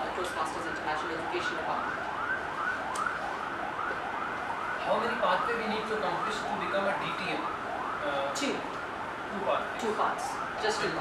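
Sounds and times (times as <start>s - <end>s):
siren in rising sweeps: 0.0s - 11.0s.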